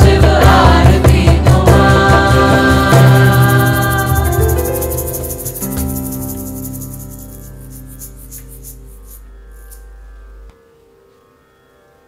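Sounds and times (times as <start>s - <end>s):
live band held notes ringing: 1.7s - 8.9s
fast high-pitched pulsing: 2.2s - 10.2s.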